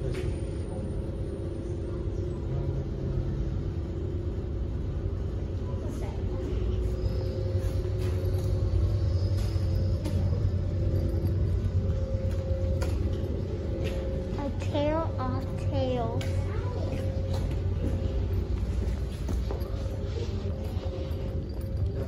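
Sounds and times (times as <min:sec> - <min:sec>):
constant hum: 0:00.0 - 0:22.0.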